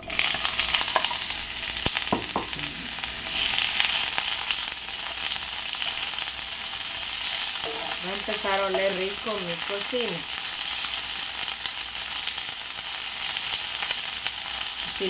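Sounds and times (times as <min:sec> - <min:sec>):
onions sizzling in hot oil: 0:00.0 - 0:15.0.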